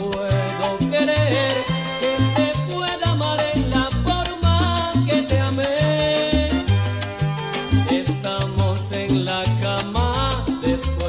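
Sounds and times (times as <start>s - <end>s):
bass line: 0.0s - 11.0s
percussion strokes: 0.0s - 11.0s.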